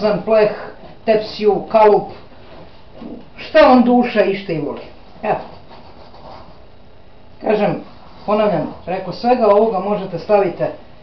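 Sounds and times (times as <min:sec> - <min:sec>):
wooden spoon stirring thick mix: 0:07.6 - 0:09.6.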